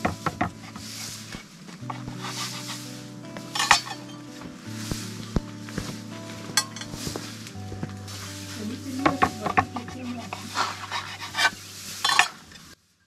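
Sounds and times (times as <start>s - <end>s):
soft background music: 0.0s - 12.8s
knife and dishes clinking: 3.6s - 4.2s, 6.5s - 7.3s.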